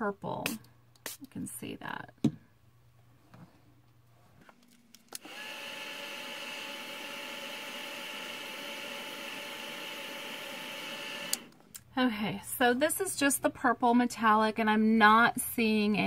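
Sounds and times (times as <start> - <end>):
electric fan motor whining: 5.1 - 11.6.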